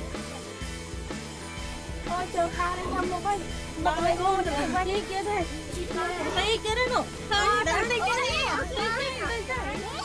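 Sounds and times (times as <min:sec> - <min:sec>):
music with low beat: 0:00.0 - 0:10.0
children and women chattering: 0:02.1 - 0:10.0.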